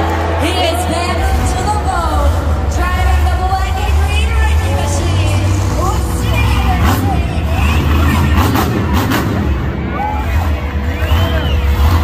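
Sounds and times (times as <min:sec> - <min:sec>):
crowd voices: 0:00.0 - 0:12.0
truck engines idling: 0:00.0 - 0:12.0.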